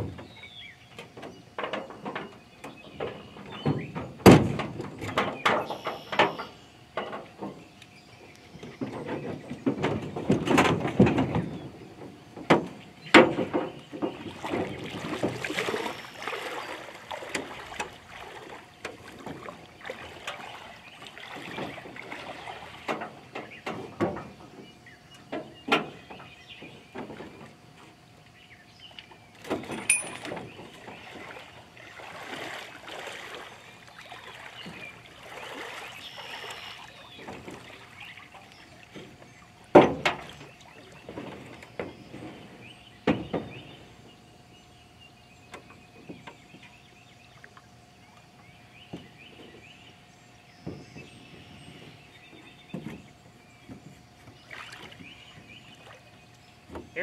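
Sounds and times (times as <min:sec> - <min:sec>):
knocks and clanks of aluminum boat hull: 0:00.0 - 0:07.8, 0:08.4 - 0:28.0, 0:29.0 - 0:44.2, 0:45.5 - 0:47.6, 0:48.4 - 0:57.0
splashing from wading in shallow water: 0:13.2 - 0:24.0, 0:29.4 - 0:42.6, 0:54.1 - 0:57.0.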